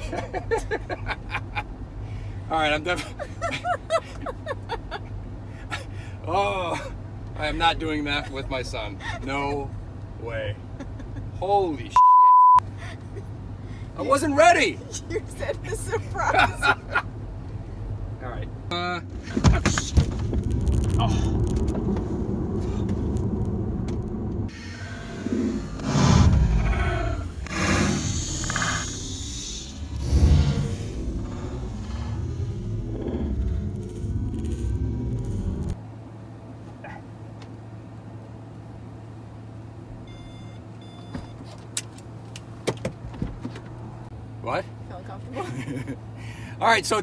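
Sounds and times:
car road and wind noise: 0.0s - 12.0s, 12.7s - 47.0s
steady low hum: 15.6s - 41.1s
heavy low bumps: 19.2s - 35.8s.

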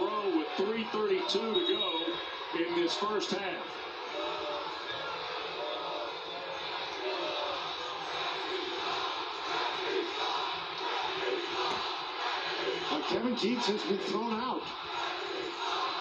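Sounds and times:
arena crowd din: 0.0s - 16.0s
crowd shouts: 0.0s - 16.0s.

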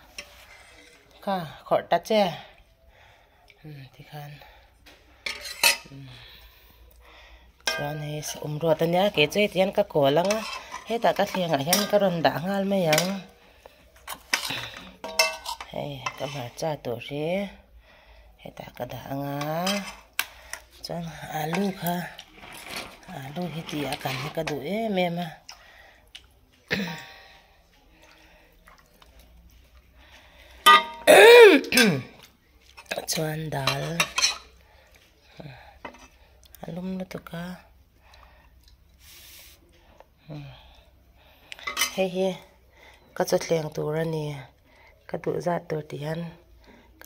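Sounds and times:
wooden pestle scraping steel bowl: 21.5s - 24.6s.

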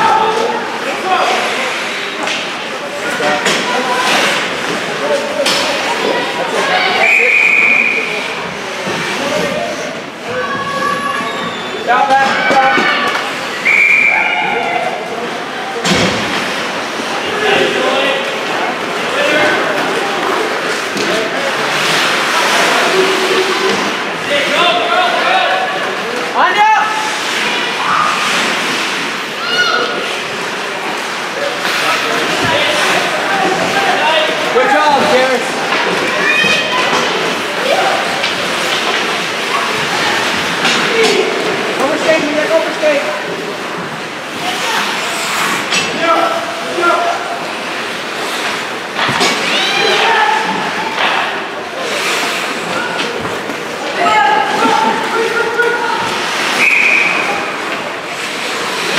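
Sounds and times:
many voices calling and chattering: 0.0s - 58.9s.

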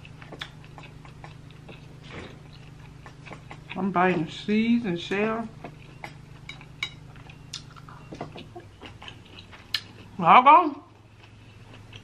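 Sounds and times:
chewing: 0.0s - 10.2s, 10.8s - 12.0s.

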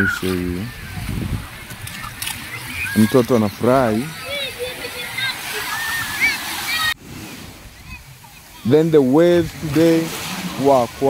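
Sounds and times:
faint voices: 0.0s - 7.0s
surf breaking over sand: 2.4s - 11.0s.

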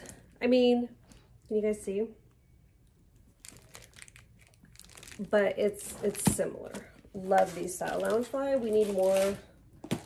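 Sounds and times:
plastic wrap crinkling: 3.3s - 10.0s.

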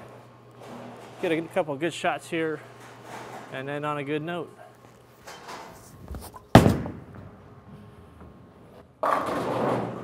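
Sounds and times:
bowling ball rolling: 6.0s - 10.0s
bowling ball landing thud: 6.2s - 7.4s.

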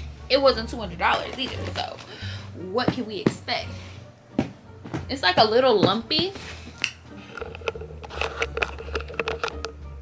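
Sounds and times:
camera handling clicks and rustles: 6.8s - 9.7s.

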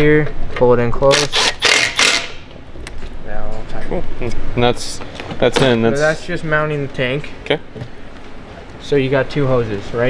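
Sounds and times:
impact driver driving screw: 1.1s - 2.4s.

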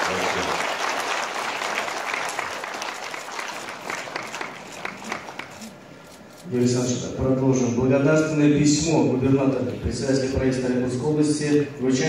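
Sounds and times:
audience applauding: 0.0s - 5.7s.

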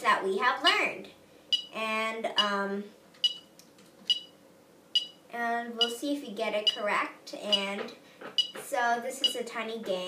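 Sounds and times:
metronome clicks: 1.6s - 1.8s.

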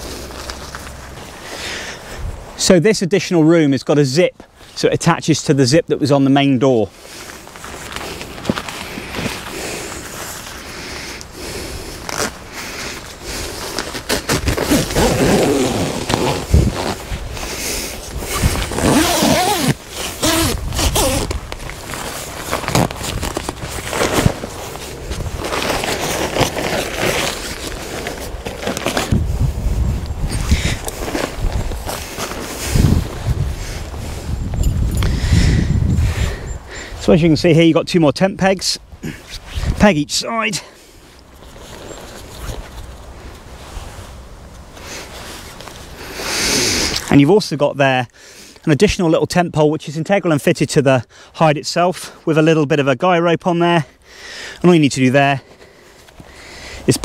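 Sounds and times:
fabric rustling and scraping: 6.9s - 34.5s, 41.0s - 46.0s
zip being worked: 13.6s - 21.4s.

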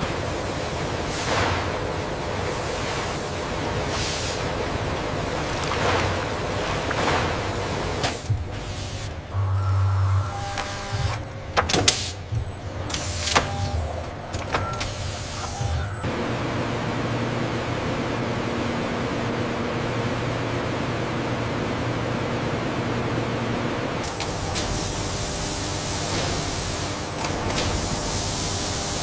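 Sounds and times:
rush of air from industrial fans: 0.0s - 9.2s
low hum: 4.5s - 24.7s.

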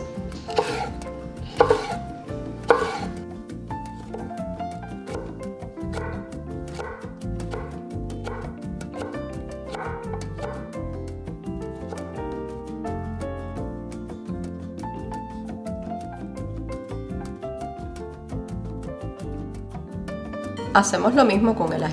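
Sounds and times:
background music: 0.0s - 21.9s
knife chopping on wooden board: 0.4s - 2.0s, 2.6s - 3.2s, 4.0s - 10.8s.

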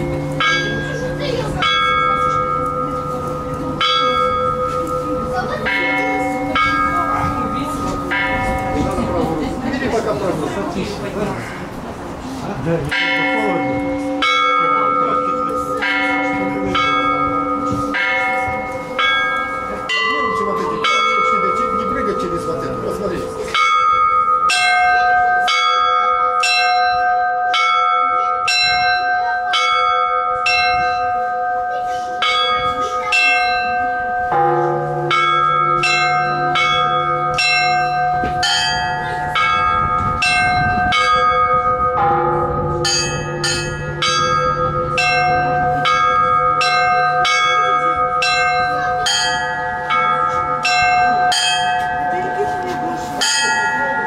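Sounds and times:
small bells ringing rhythmically: 0.0s - 11.5s, 12.8s - 54.0s
deep bell ringing: 0.0s - 11.7s, 12.8s - 54.0s.

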